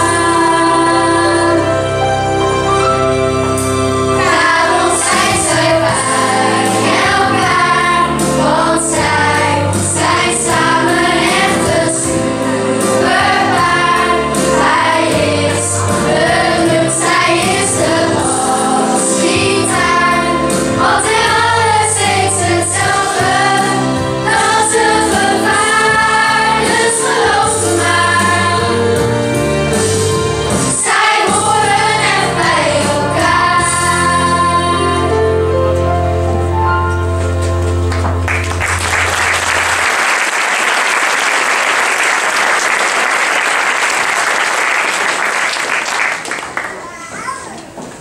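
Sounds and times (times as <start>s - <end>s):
instrumental accompaniment: 0.0s - 41.4s
children singing in chorus: 4.2s - 29.1s, 30.7s - 35.2s.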